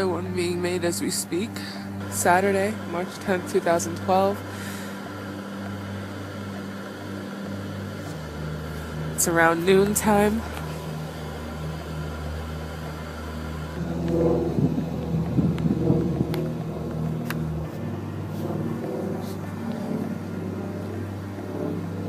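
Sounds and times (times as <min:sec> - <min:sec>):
city traffic hum: 0:00.0 - 0:22.0
motor vehicle engine: 0:00.0 - 0:22.0.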